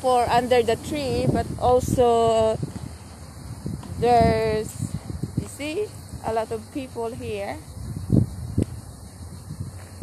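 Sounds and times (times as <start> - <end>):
faint outdoor background noise: 0.0 - 10.0
low thumps on microphone: 3.6 - 4.4.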